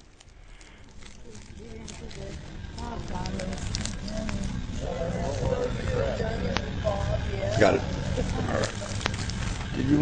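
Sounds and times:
indistinct voices: 0.0 - 10.0.

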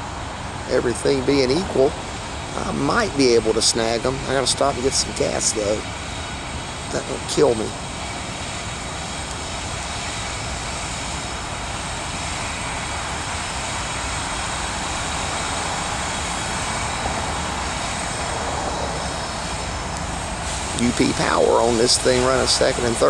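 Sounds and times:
diesel locomotive engine drone: 0.0 - 23.0.

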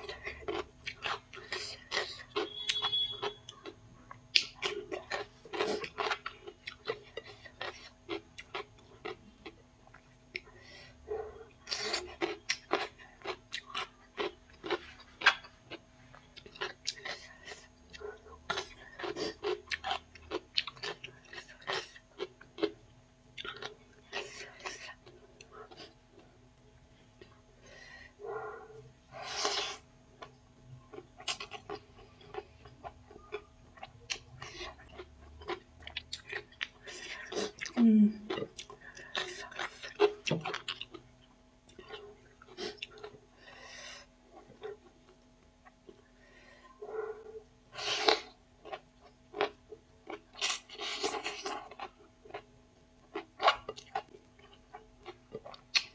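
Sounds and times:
close-up chewing and crunching: 0.0 - 55.9.

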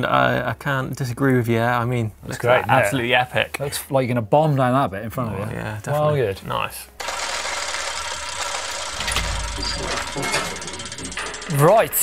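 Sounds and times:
mechanical gear clatter: 7.0 - 12.0.

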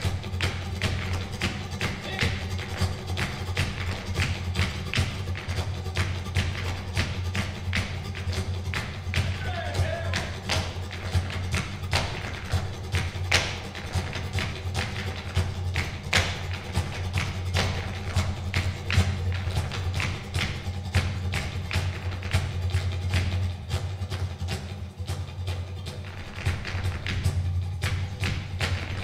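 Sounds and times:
dancer's shoes striking wooden stage: 0.0 - 29.0
hand clapping: 0.0 - 29.0.

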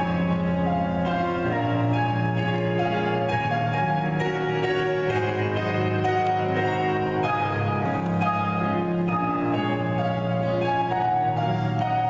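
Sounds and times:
bell-like instrumental music: 0.0 - 12.0.

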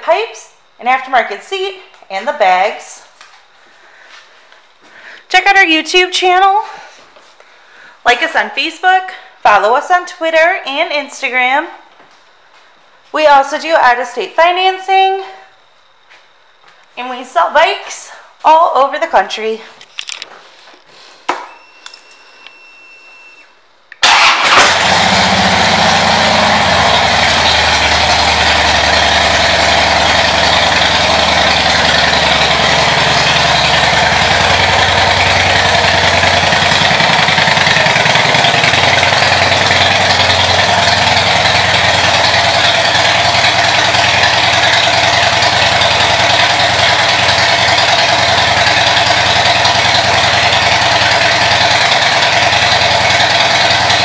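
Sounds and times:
motorcycle engine starting and idling: 24.0 - 54.0.

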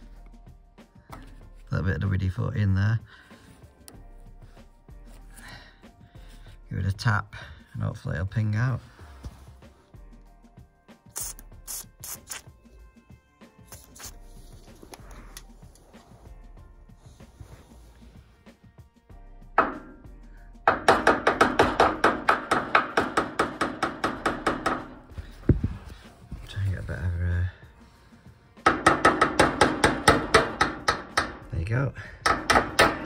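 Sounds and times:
spray can hissing: 11.1 - 12.5
hammer tapping metal valve: 19.6 - 20.0, 20.7 - 24.9, 28.6 - 31.5, 32.2 - 33.0.

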